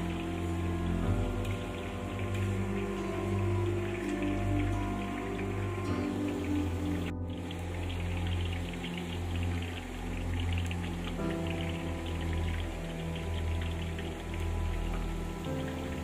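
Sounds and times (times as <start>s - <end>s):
background music sustained notes: 0.0s - 16.0s
oil sizzling and crackling: 0.0s - 16.0s.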